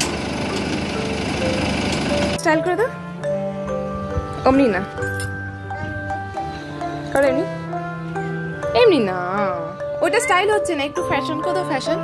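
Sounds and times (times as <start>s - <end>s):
van engine idling: 0.0s - 2.9s
faint background music: 2.2s - 12.0s.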